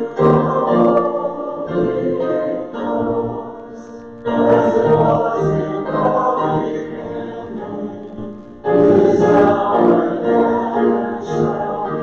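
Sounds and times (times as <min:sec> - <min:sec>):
group singing a hymn: 0:00.0 - 0:12.0.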